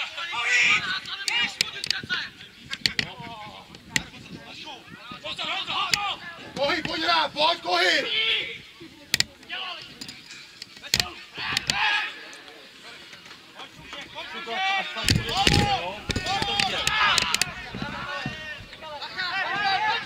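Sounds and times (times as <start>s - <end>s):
players shouting: 0.0s - 8.8s, 10.8s - 12.8s, 13.6s - 20.0s.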